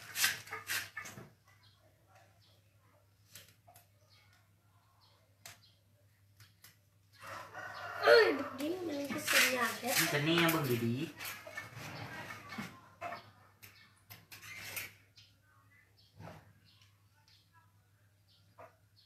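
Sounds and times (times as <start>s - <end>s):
rooster crowing: 7.2s - 8.7s.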